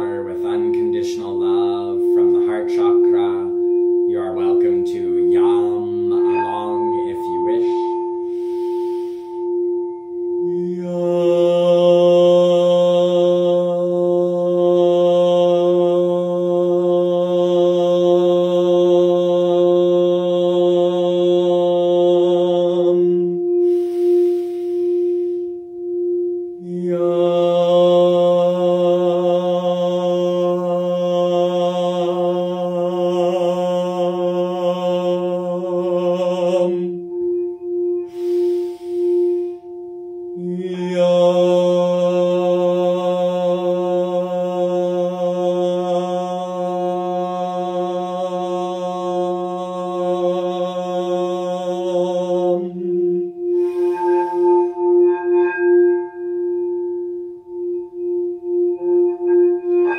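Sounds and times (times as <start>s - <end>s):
man chanting long notes: 0.0s - 25.7s, 26.5s - 59.9s
singing bowl tone: 0.0s - 59.9s.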